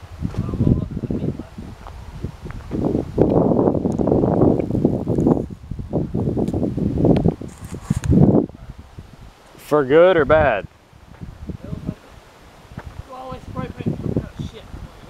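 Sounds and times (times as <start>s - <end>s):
wind buffeting microphone: 0.0s - 15.0s
footsteps on gravel: 1.7s - 3.4s, 11.1s - 11.4s, 12.7s - 13.1s.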